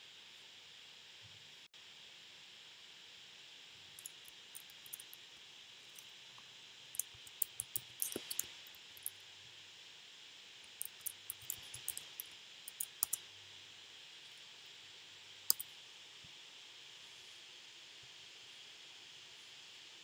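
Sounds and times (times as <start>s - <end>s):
faint hiss: 0.0s - 20.0s
keyboard typing: 4.0s - 5.2s, 7.0s - 9.1s, 10.7s - 13.2s, 15.5s - 15.7s.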